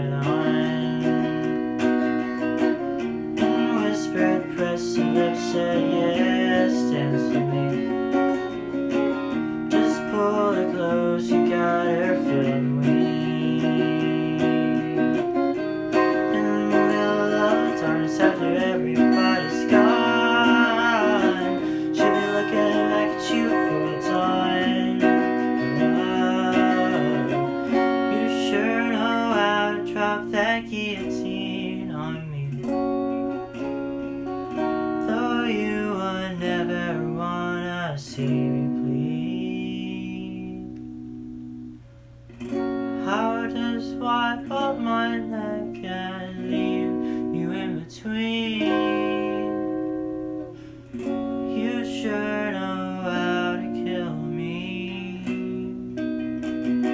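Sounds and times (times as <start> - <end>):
clean electric guitar playing: 0.0 - 56.9.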